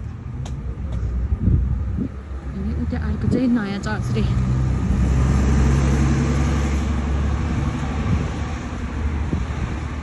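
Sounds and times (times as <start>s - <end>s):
low rumble of road traffic: 0.0s - 10.0s.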